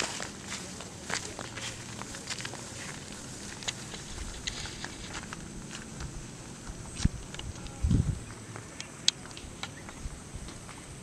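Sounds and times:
cattle hooves on gravel: 0.0 - 11.0
man's footsteps on gravel: 0.0 - 11.0.

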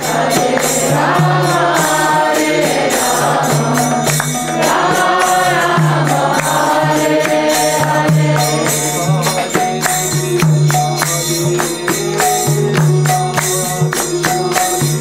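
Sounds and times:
group singing a chant: 0.0 - 12.9
jingle of small percussion: 0.0 - 15.0.

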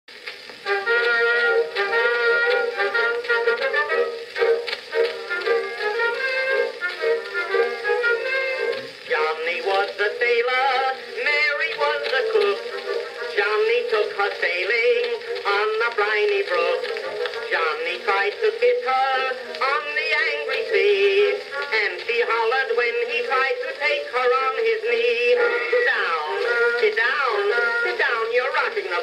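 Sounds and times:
band instrumental on phonograph: 0.1 - 29.0.

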